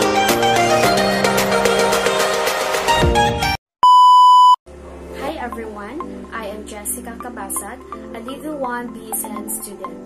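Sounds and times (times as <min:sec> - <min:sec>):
background music: 0:00.0 - 0:03.6, 0:04.7 - 0:10.0.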